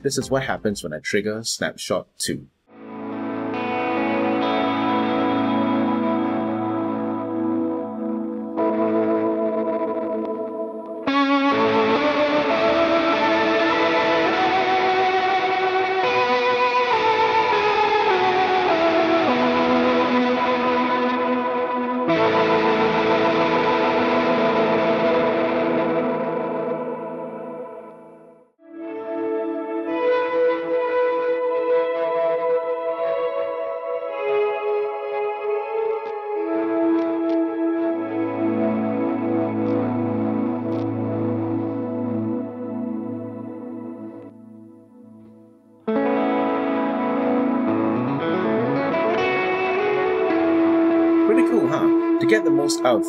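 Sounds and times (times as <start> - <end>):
electric guitar chords with vibrato: 2.7 - 53.0.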